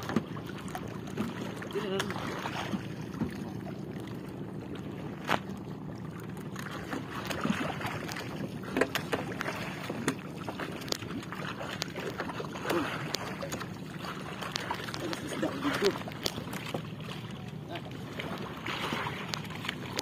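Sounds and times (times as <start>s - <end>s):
water lapping against boat: 0.0s - 20.0s.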